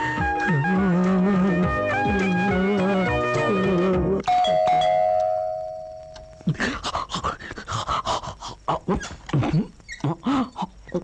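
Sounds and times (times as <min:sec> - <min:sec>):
held ringing tone: 0:04.2 - 0:06.4.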